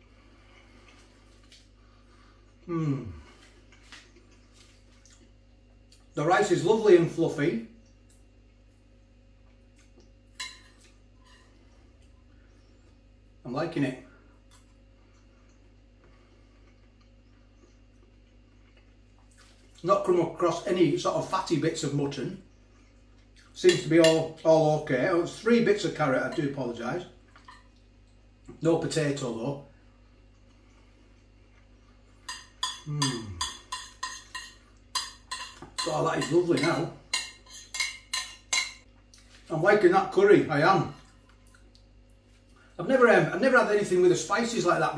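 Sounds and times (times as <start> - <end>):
cutlery tapping and scraping a dish: 32.3 - 38.9.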